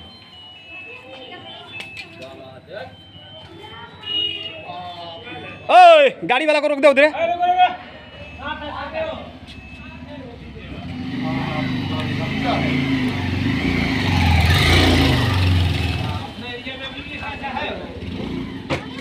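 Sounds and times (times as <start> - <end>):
vehicle engine passing by: 9.9 - 16.5, 17.2 - 18.7.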